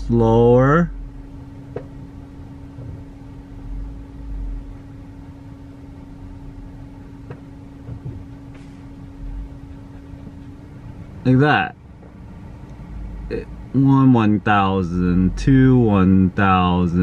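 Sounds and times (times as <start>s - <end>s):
car cabin low hum: 0.0s - 17.0s
faint low rumbles: 0.0s - 17.0s.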